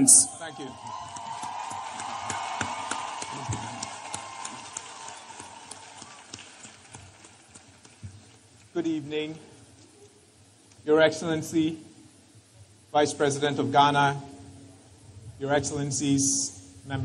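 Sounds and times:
audience applause: 0.4s - 8.4s.

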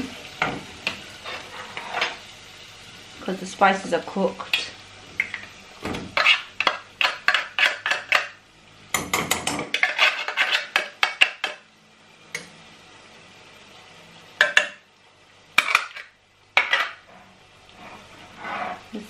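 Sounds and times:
spatula scraping tin and pan: 1.2s - 2.2s, 6.1s - 8.3s, 9.7s - 11.5s, 16.6s - 19.0s.

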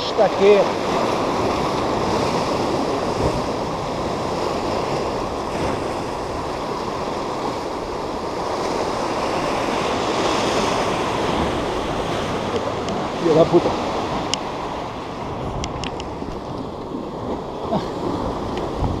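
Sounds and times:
surf breaking over rocks: 0.0s - 19.0s
wind buffeting microphone: 0.7s - 19.0s.

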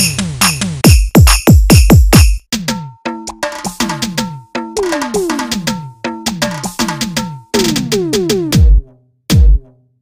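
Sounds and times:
electronic percussion loop: 0.0s - 9.7s.

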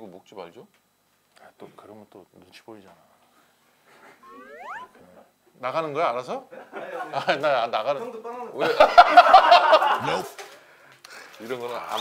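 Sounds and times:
rising whistle-like glide: 4.2s - 5.0s.

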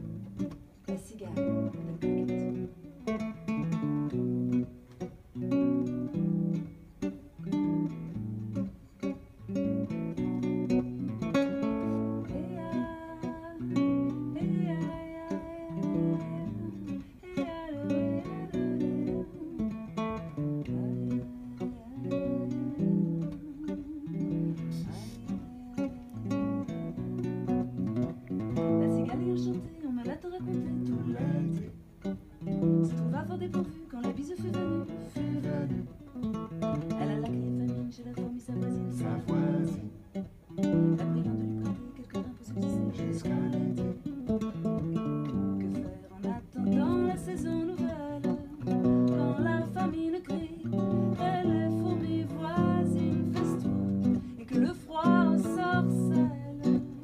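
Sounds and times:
acoustic guitar strummed and picked: 0.0s - 57.0s
person singing: 11.4s - 27.1s, 28.5s - 40.1s, 40.7s - 57.0s.

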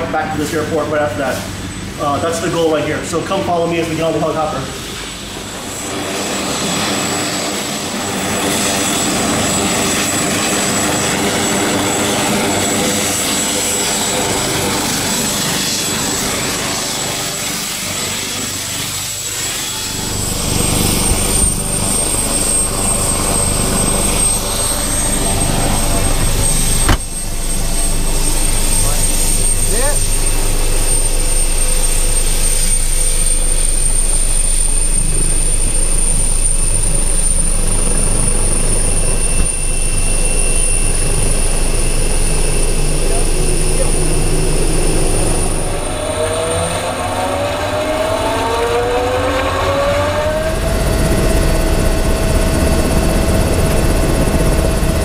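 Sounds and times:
turbine engine whine: 0.0s - 55.0s
low steady rumble: 19.8s - 43.5s
sharp knock: 26.8s - 27.2s.

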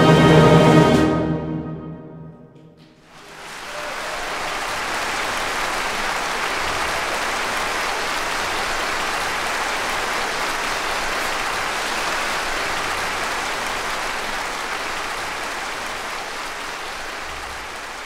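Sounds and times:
audience applauding: 2.9s - 18.0s.

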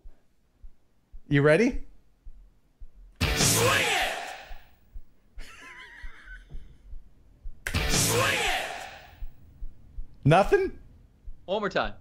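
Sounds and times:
hard rock song snippet: 3.2s - 4.0s
person shouting: 3.4s - 4.6s, 8.0s - 9.1s.

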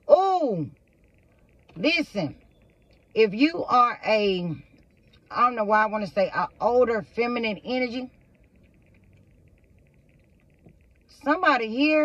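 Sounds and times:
faint low hum: 0.0s - 12.0s
fast high-pitched ticking: 0.0s - 12.0s.

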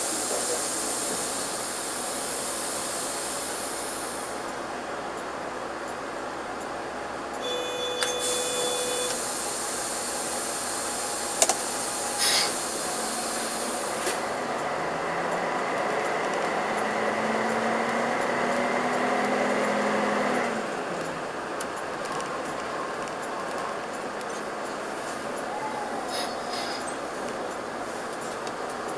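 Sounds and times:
compressed air hissing: 0.0s - 4.6s, 7.4s - 14.6s, 24.7s - 28.4s
bus diesel engine: 0.0s - 28.9s
short steady beep: 7.4s - 9.3s
click: 11.4s - 11.6s.

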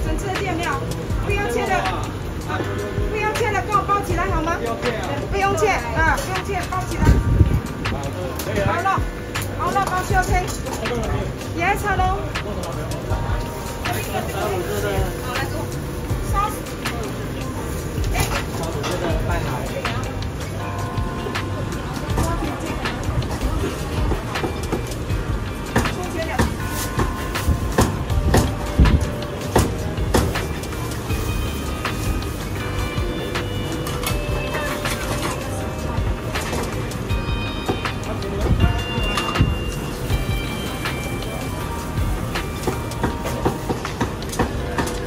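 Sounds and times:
utensils and dishes clinking: 0.0s - 45.0s.

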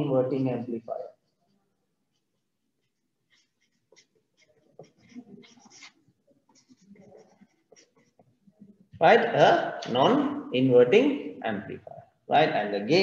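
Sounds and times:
marker scratching on paper: 2.0s - 8.6s.

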